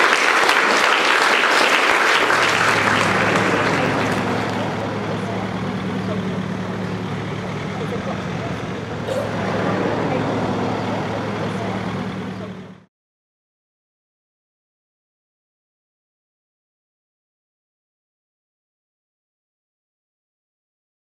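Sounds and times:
applause: 0.0 - 7.0
minibus engine humming: 0.0 - 12.9.

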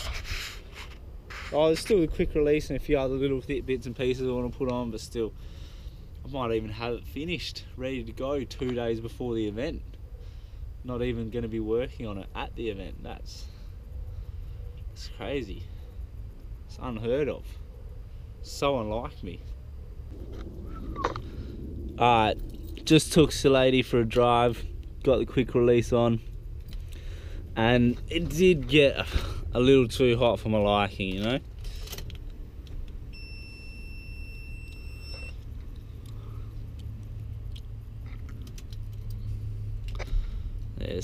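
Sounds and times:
low outdoor rumble: 0.0 - 41.0
low steady hum: 0.0 - 41.0
steady electronic beep: 33.1 - 35.4.

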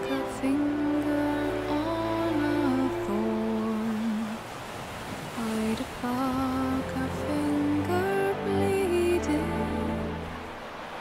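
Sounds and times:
woman humming melody: 0.0 - 4.3
sea and wind rumble: 0.0 - 11.0.

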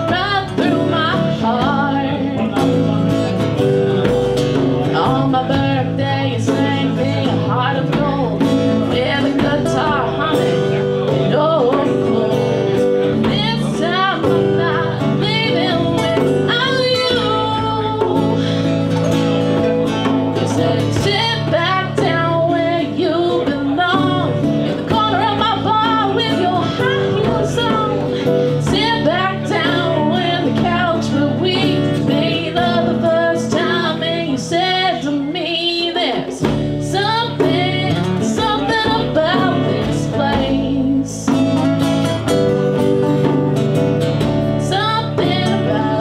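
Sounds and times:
acoustic guitar playing: 0.0 - 46.0
electric guitar playing: 0.0 - 46.0
person singing: 20.0 - 41.7, 44.6 - 46.0.

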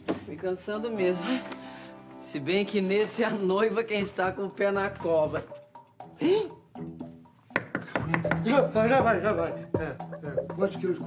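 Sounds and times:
soft background music: 0.0 - 11.0.

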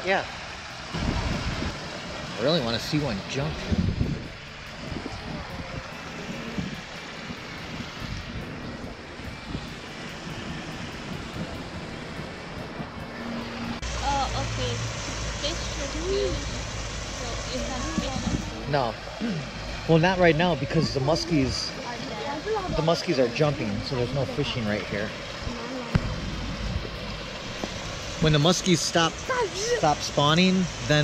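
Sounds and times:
low hum: 0.0 - 31.0
water rushing over a spillway: 0.0 - 31.0
wind on microphone: 0.8 - 18.8, 20.5 - 31.0.

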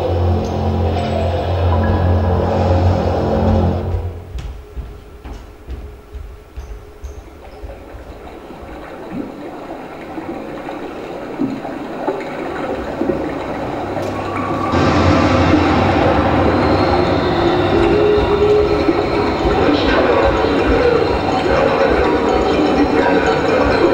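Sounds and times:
train rumbling on rails: 0.0 - 23.9.

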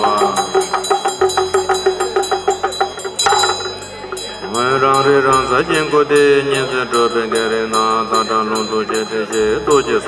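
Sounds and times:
hand bell ringing: 0.0 - 10.0
hand drum rattling: 0.0 - 10.0.

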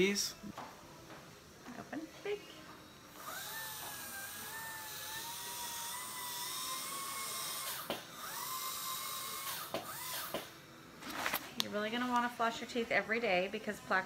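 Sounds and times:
dental handpiece whining: 2.8 - 10.6.

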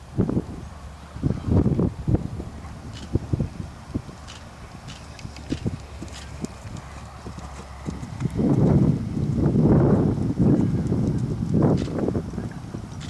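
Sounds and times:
horse hoofbeats on grass: 4.0 - 9.2.

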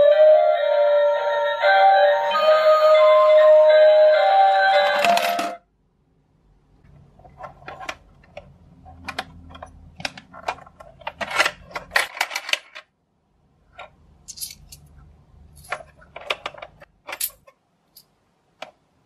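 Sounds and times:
metal coins clinking: 14.2 - 15.9.

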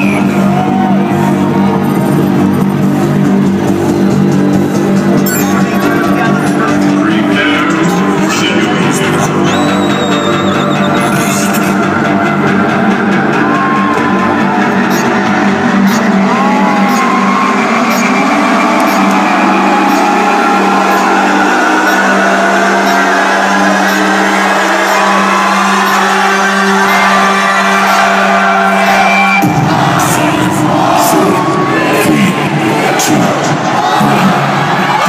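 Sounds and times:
crowd whooping and cheering: 0.0 - 35.0
electronic dance music build-up: 0.0 - 35.0.

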